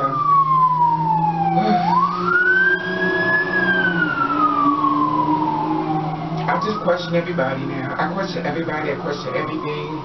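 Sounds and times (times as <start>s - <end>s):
emergency siren wailing: 0.0s - 10.0s.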